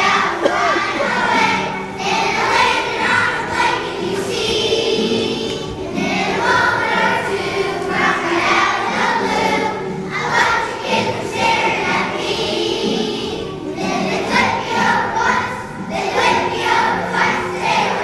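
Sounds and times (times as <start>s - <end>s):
children's choir singing: 0.0s - 18.0s.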